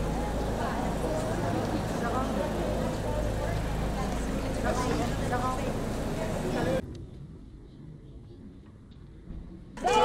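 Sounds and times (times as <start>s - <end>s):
crowd talking: 0.0s - 6.8s
vehicle engine idling: 0.0s - 6.8s.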